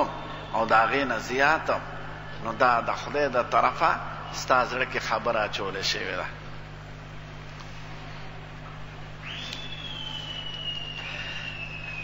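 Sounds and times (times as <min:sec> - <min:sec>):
low electrical hum: 0:00.0 - 0:12.0
high whistling tone sinking in pitch: 0:09.2 - 0:12.0.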